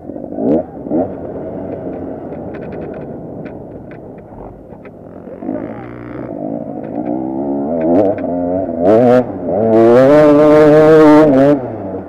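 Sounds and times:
motorbike engine revving hard: 0.2 - 12.0.

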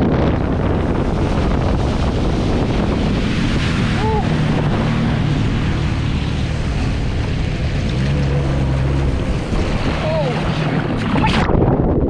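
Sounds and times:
water rushing and spraying: 0.0 - 11.6
jet ski engine running: 0.0 - 11.7
wind on microphone: 0.0 - 12.0.

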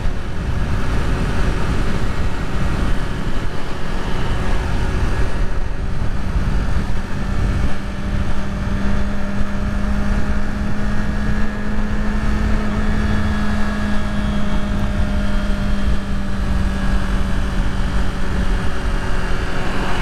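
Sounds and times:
motorcycle engine running: 0.0 - 20.0
rushing wind: 0.0 - 20.0.

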